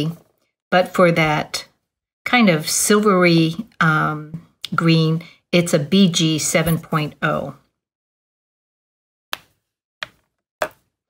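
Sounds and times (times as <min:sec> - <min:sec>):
plastic markers knocking: 0:09.3 - 0:10.9.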